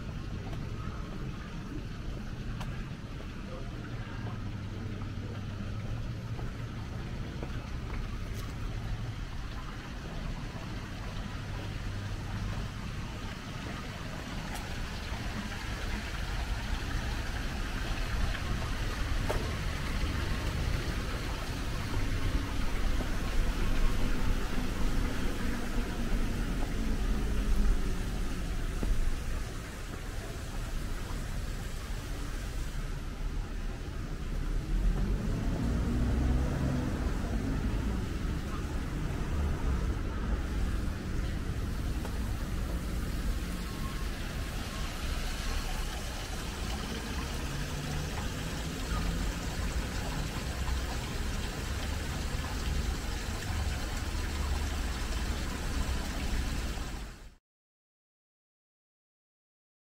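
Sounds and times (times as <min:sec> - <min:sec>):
road traffic rumble: 0:00.0 - 0:57.3
vehicle engine passing by: 0:34.1 - 0:57.0.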